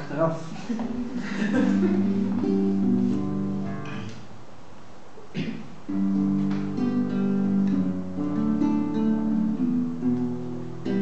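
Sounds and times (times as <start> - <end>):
acoustic guitar strummed chords: 1.6 - 4.3, 5.9 - 11.0.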